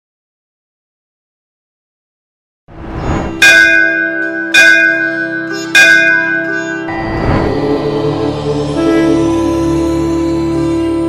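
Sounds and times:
bell ringing: 3.3s - 8.0s
low sustained drone: 5.0s - 11.0s.

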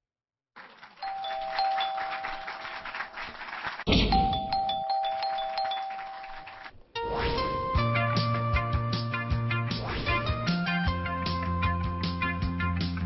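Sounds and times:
two-note ding-dong chime: 4.2s - 6.3s.

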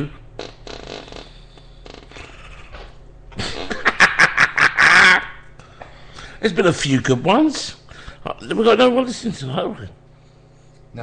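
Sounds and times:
low room tone hum: 0.0s - 11.0s
man laughing: 2.2s - 5.4s.

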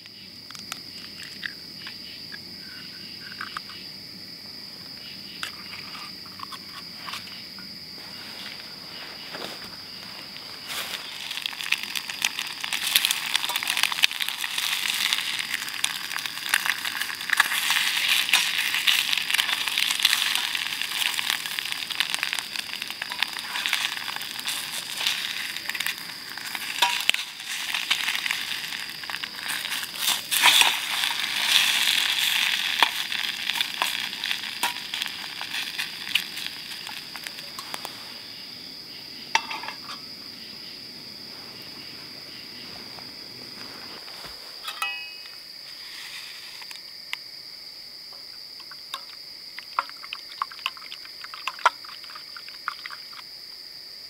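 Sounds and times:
eggs sizzling in a skillet: 8.0s - 40.3s, 48.6s - 53.3s.

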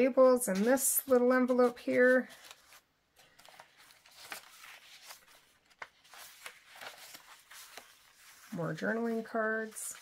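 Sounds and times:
paper pages rustling: 0.5s - 10.0s.

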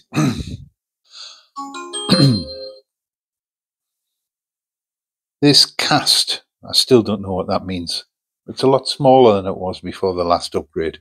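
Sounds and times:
electronic startup chime: 1.6s - 2.8s
man sighing: 2.1s - 2.7s.

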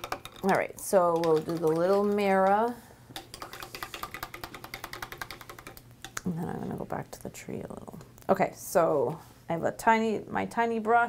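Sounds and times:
paintbrush clicking in water cup: 3.2s - 6.2s.

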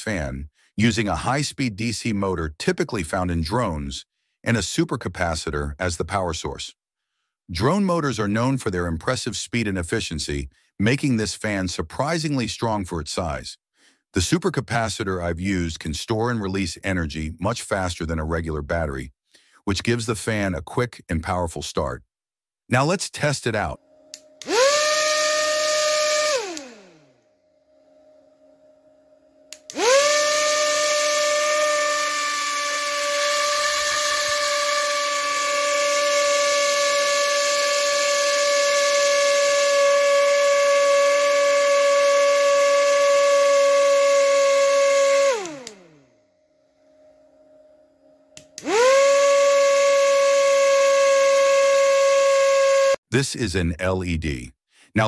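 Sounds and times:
drone motor whining: 24.1s - 27.1s, 29.5s - 46.0s, 48.4s - 53.0s.

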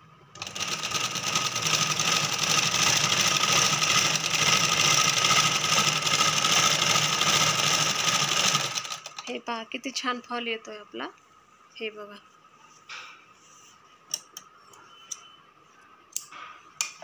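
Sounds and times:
sewing machine running: 0.4s - 9.3s.

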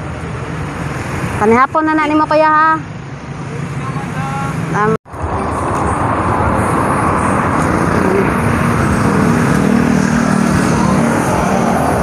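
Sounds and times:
steady engine tone: 0.0s - 12.0s
vehicles passing close by: 0.0s - 12.0s.

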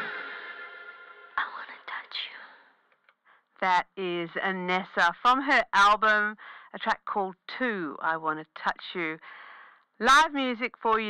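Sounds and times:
held notes of recorded song: 0.0s - 2.4s.

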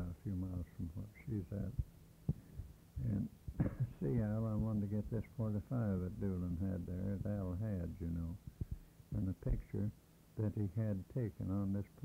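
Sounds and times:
man speaking: 0.0s - 1.8s, 3.0s - 8.5s, 9.1s - 12.0s
faint low tape hum: 0.0s - 12.0s
low thumps: 1.6s - 6.3s.

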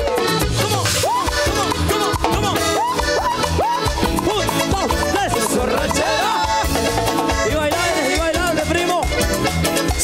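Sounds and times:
keyboard melody with gliding notes: 0.0s - 10.0s
live cumbia band: 0.0s - 10.0s.

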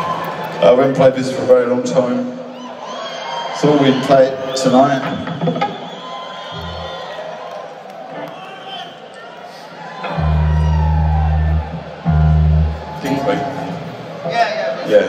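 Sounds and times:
crowd voices and calls: 0.0s - 15.0s
deep bass notes: 10.1s - 13.6s.

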